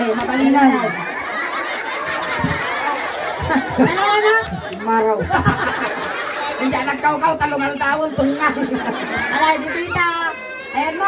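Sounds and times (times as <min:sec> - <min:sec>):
several people talking: 0:00.0 - 0:11.0.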